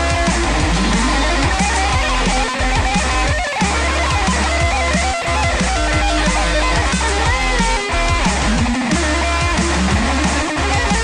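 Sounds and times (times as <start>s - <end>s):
backing track with heavy sub-bass: 0.0s - 11.0s
electric guitar melody with bends: 0.0s - 11.0s.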